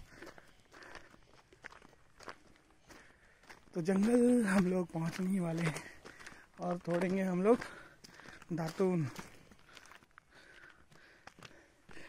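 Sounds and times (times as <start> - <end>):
footsteps on stony dirt: 0.0 - 12.0.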